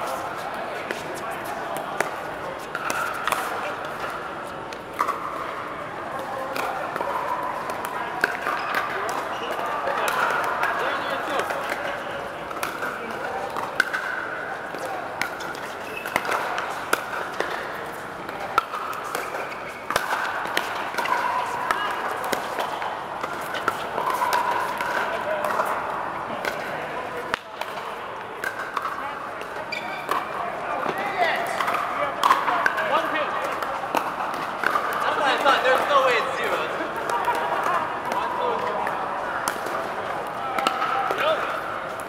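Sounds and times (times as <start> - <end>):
murmur of voices: 0.0 - 42.0.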